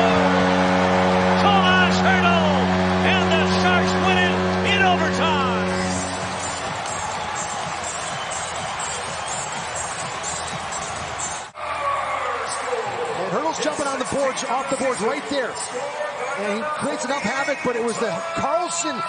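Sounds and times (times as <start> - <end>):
goal horn: 0.0 - 8.8
crowd cheering and yelling: 0.0 - 19.0.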